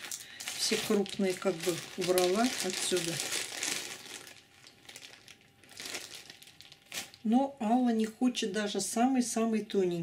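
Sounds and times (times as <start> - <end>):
plastic bag crinkling: 0.0 - 7.3.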